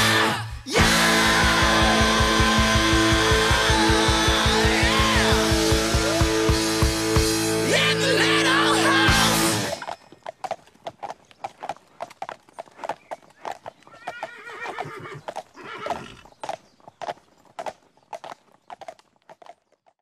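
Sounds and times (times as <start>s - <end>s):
rock song: 0.0s - 9.8s
horse hooves clip-clopping: 1.1s - 7.5s, 9.3s - 20.0s
horse whinnying: 13.9s - 16.3s.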